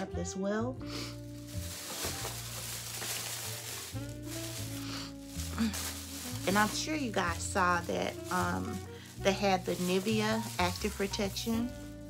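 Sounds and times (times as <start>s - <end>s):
soft background music: 0.0s - 12.0s
plastic bag crinkling: 1.0s - 12.0s.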